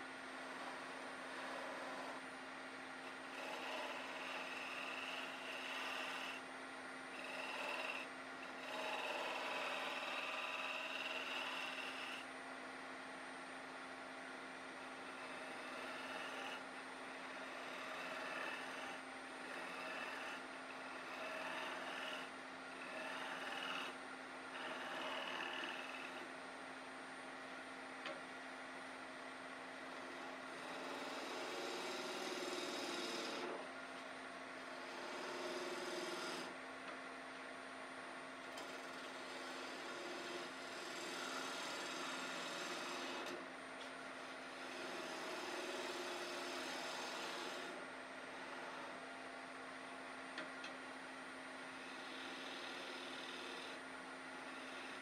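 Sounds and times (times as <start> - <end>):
lathe motor hum: 0.0 - 13.0, 13.7 - 27.2, 29.5 - 36.6, 38.1 - 55.0.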